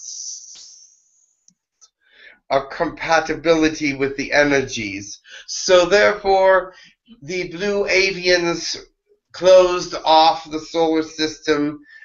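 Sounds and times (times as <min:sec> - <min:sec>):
faint high hiss: 0:00.0 - 0:01.2.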